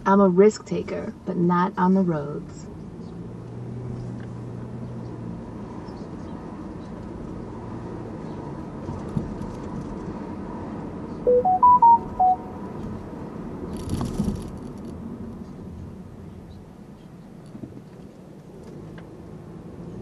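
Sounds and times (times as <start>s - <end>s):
road and engine rumble: 0.0s - 20.0s
electronic chime: 11.3s - 12.6s.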